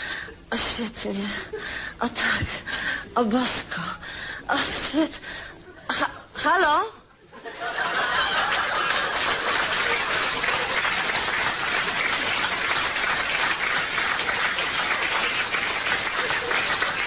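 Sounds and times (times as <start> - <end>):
audience applauding: 7.8 - 17.0.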